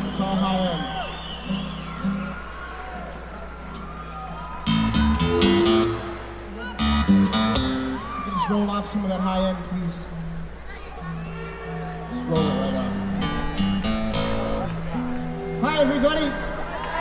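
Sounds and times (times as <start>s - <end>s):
crowd shouts and whoops: 0.4s - 8.8s, 10.8s - 12.3s, 16.4s - 17.0s
acoustic guitar strummed chords: 4.6s - 8.1s, 12.1s - 16.6s.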